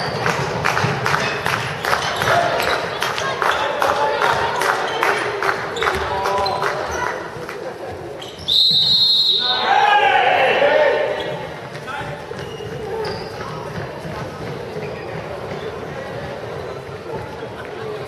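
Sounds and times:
ball bouncing on hall floor: 0:00.0 - 0:07.6, 0:11.2 - 0:17.4
referee's whistle blast: 0:08.5 - 0:09.7
young voices shouting: 0:09.4 - 0:11.3.

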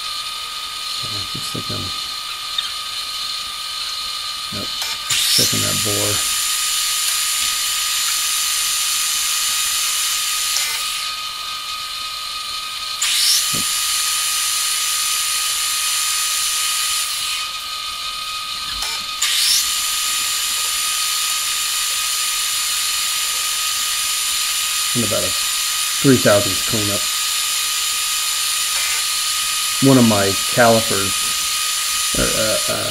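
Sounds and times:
lathe gears whining: 0:00.0 - 0:32.9
hiss of metal cutting: 0:04.5 - 0:10.8, 0:13.0 - 0:14.2, 0:19.2 - 0:22.6.

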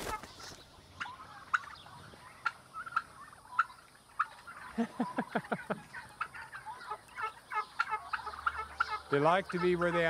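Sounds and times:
turkeys calling: 0:00.0 - 0:10.0.

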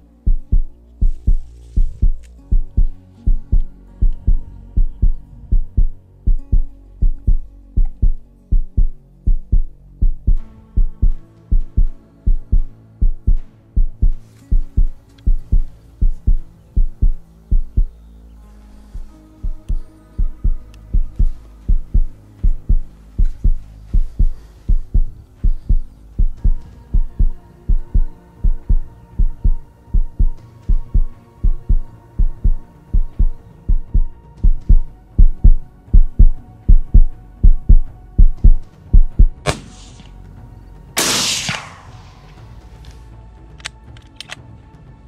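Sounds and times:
low music drone: 0:00.0 - 0:45.0
heartbeat thumps: 0:00.2 - 0:18.0, 0:19.0 - 0:39.4
sharp crack: 0:39.4 - 0:40.2, 0:41.0 - 0:42.7.

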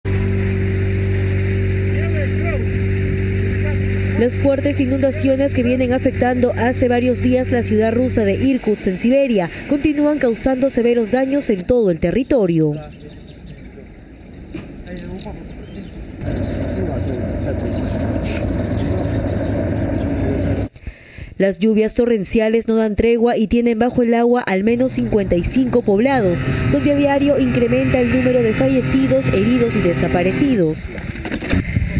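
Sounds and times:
engine drone: 0:00.0 - 0:20.7, 0:24.5 - 0:31.9.

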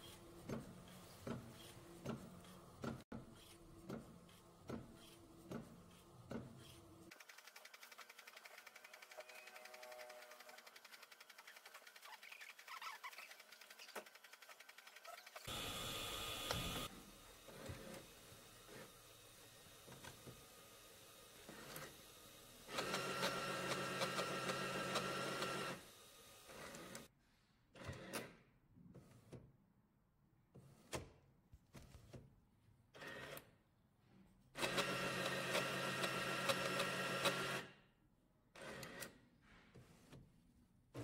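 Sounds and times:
printer motor whirring and whine: 0:06.6 - 0:11.7, 0:14.3 - 0:27.1, 0:34.6 - 0:37.6
printer fast fluttering: 0:07.1 - 0:15.5.

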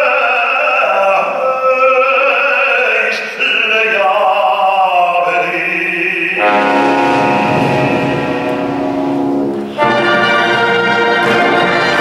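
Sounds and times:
orchestra holding a long chord: 0:06.4 - 0:12.0.

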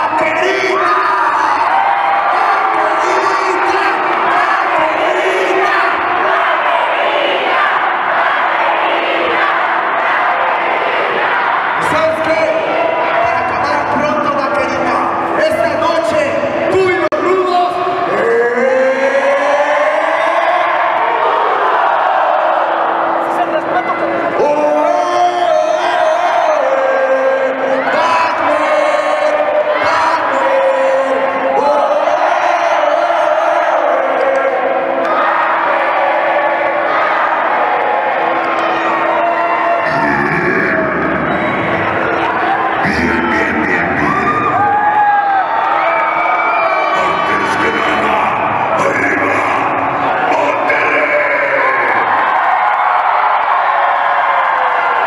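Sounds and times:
crowd cheering and shouting: 0:00.0 - 0:55.0.

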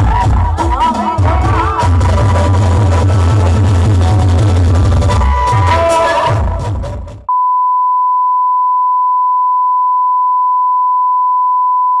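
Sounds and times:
music: 0:00.0 - 0:07.3.

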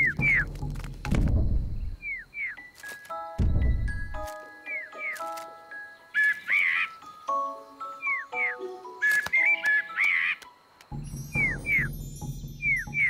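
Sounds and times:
light tinkling music: 0:02.5 - 0:13.0.

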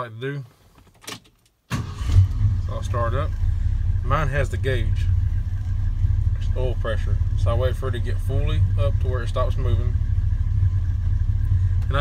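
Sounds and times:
truck engine idling: 0:01.9 - 0:12.0.

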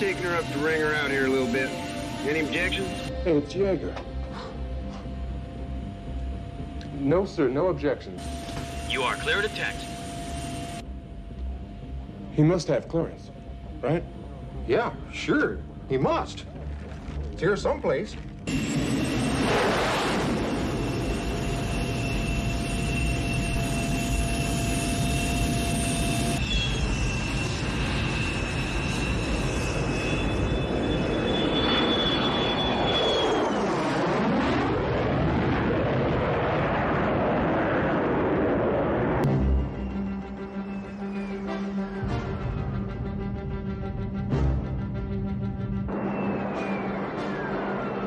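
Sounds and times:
jet engine roaring in flight: 0:00.0 - 0:03.3, 0:04.6 - 0:11.3, 0:18.5 - 0:43.1, 0:44.8 - 0:48.0
thin whistle: 0:26.4 - 0:33.6, 0:39.4 - 0:42.4, 0:45.9 - 0:48.0.

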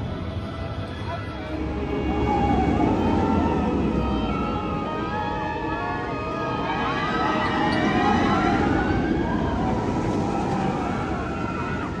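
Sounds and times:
coaster whine: 0:00.0 - 0:12.0
roller coaster wheels rumbling: 0:00.0 - 0:12.0.

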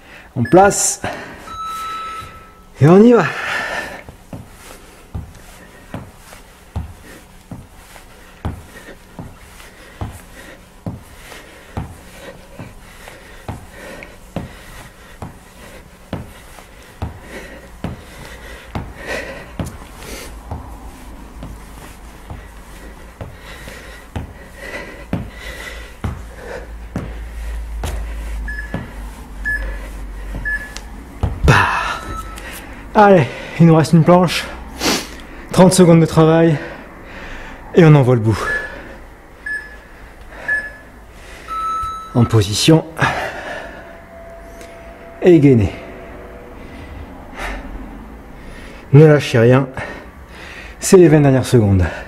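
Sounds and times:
electronic timer beeps: 0:00.4 - 0:02.8, 0:28.5 - 0:28.8, 0:29.4 - 0:29.7, 0:30.4 - 0:30.9, 0:31.9 - 0:32.4, 0:38.4 - 0:38.8, 0:39.4 - 0:40.9, 0:41.5 - 0:42.4
feet tapping the floor: 0:03.6 - 0:32.7
panting breath: 0:08.0 - 0:30.7.

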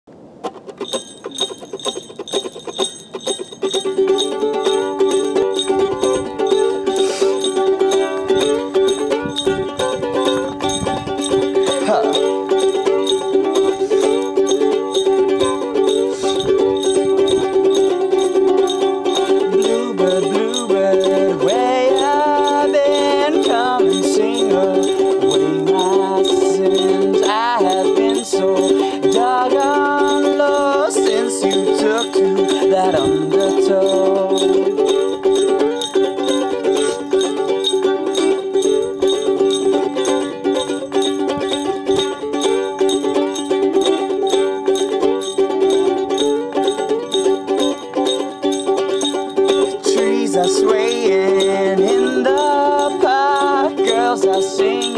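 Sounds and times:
ukulele strumming: 0:00.1 - 0:54.9
man singing: 0:11.6 - 0:14.7, 0:15.5 - 0:16.6, 0:19.2 - 0:35.0, 0:49.5 - 0:54.9.

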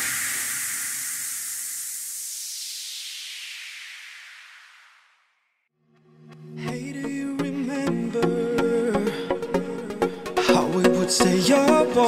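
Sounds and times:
white noise sweep: 0:00.0 - 0:05.7
electronic dance track: 0:06.7 - 0:12.0.

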